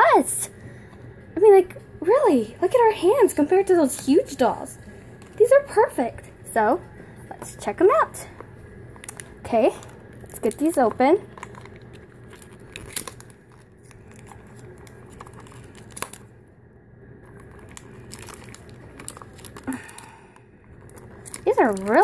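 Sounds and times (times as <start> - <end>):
cardboard packaging crinkling: 8.9 - 16.3, 17.2 - 22.0.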